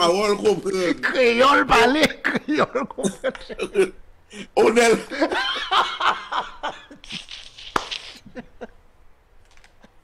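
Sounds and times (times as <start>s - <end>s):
men laughing: 1.5s - 8.8s.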